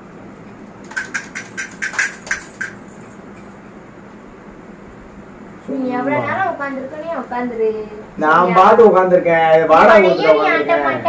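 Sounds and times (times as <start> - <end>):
low steady background noise: 0.0 - 11.0
baby rattle clicking: 0.8 - 2.8.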